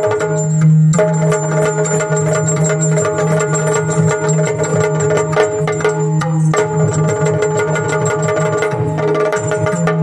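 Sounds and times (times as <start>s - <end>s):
barrel drum quick rhythm: 0.0s - 10.0s.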